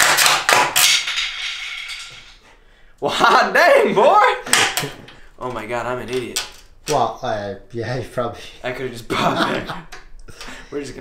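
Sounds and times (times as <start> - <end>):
sharp crack: 0.0 - 2.4.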